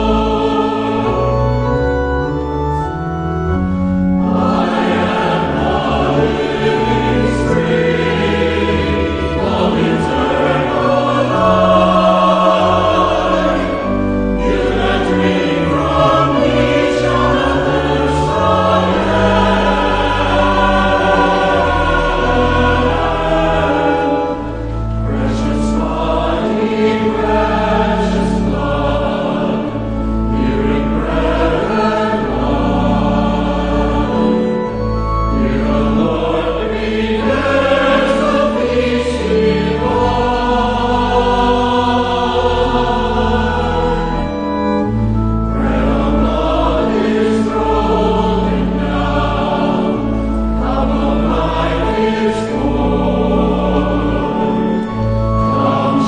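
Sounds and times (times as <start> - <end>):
organ sustaining low notes: 0.0 - 56.0
voices singing a hymn: 0.0 - 56.0.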